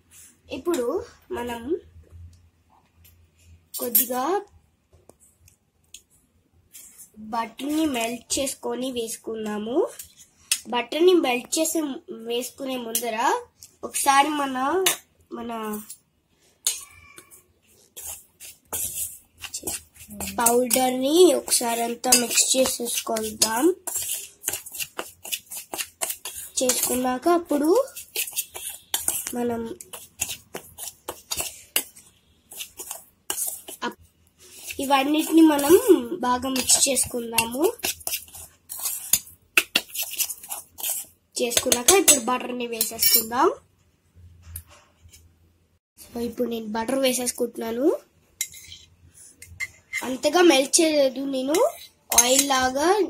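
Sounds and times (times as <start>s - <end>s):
utensil scraping steel bowl: 16.6s - 43.3s, 48.4s - 50.8s, 51.4s - 53.0s
person's voice: 19.6s - 23.8s, 34.8s - 37.8s.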